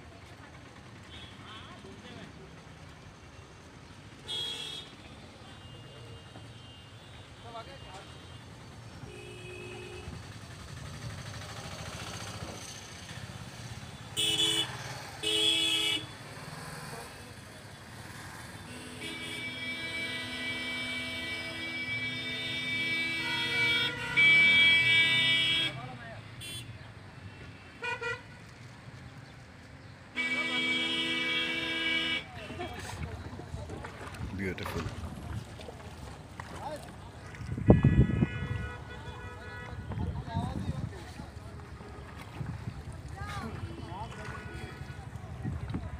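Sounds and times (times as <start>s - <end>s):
road traffic noise: 0.0s - 45.9s
vehicle horns honking: 4.2s - 10.2s, 14.0s - 16.2s, 18.6s - 28.4s, 30.1s - 33.0s, 37.2s - 40.4s, 43.7s - 45.2s.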